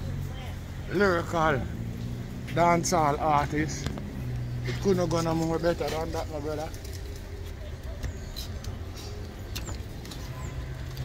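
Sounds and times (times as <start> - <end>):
low rumble of road traffic: 0.0 - 11.0.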